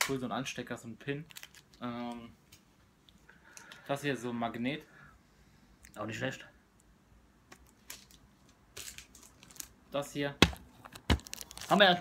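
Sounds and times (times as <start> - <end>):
plastic packaging rustling: 1.3 - 1.9, 7.7 - 9.8, 10.4 - 12.0.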